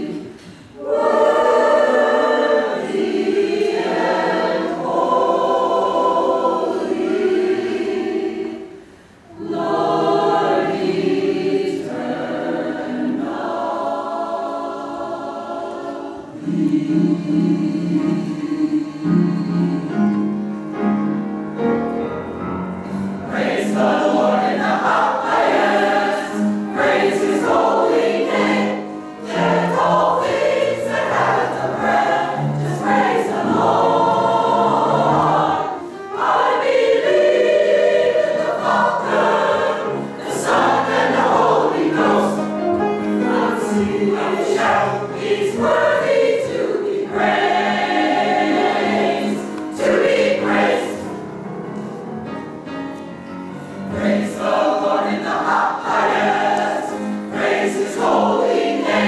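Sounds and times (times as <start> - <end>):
mixed choir singing gospel: 0.0 - 20.8, 22.4 - 59.0.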